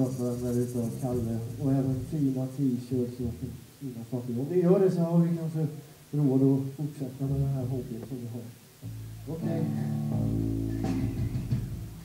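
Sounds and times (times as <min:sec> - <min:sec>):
low sustained bass note: 0:08.8 - 0:11.2
electric guitar notes ringing: 0:08.8 - 0:12.0.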